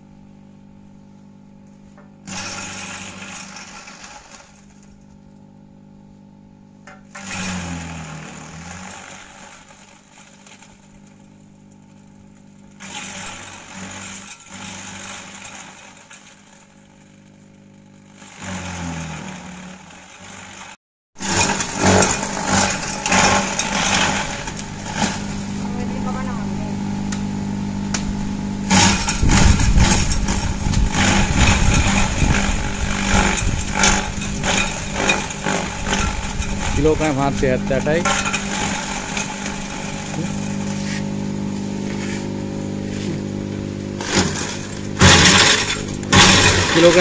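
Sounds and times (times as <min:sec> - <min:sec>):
shredder motor hum: 0:00.0 - 0:47.0
loud chopping of branches: 0:27.9 - 0:36.7, 0:44.0 - 0:47.0.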